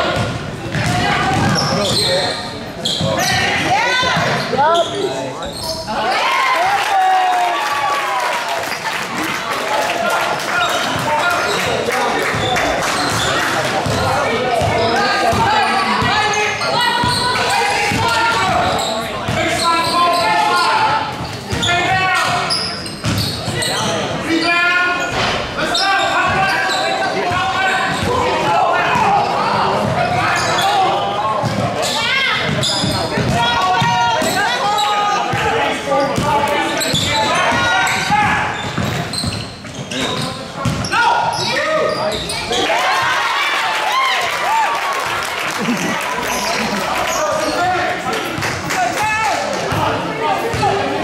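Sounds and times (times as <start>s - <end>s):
voices calling out and chattering: 0.0s - 51.0s.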